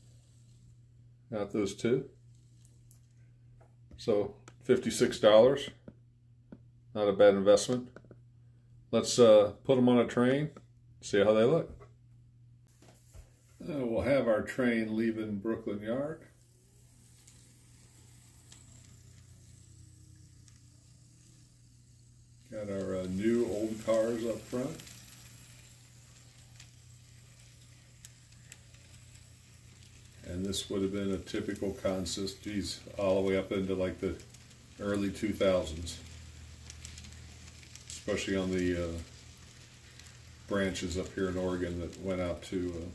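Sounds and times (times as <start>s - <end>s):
faint steady hum: 0.0s - 42.9s
model train soft ticks: 22.8s - 29.1s, 29.7s - 42.9s.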